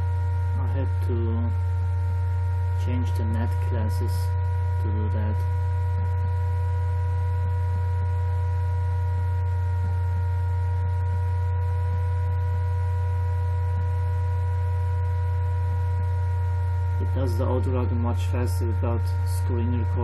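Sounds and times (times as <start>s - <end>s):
faint whining tones: 0.0s - 20.0s
laptop fan humming: 0.0s - 20.0s.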